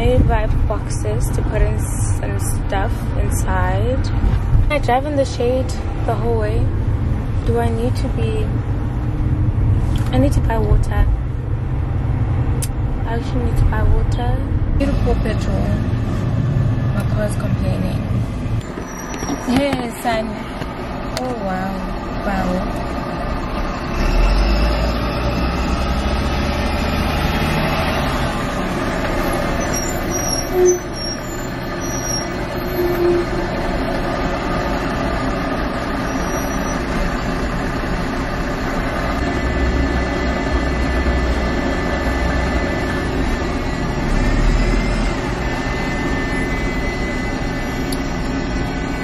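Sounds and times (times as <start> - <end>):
low engine rumble: 0.0 - 49.0
traffic engines running: 0.0 - 49.0.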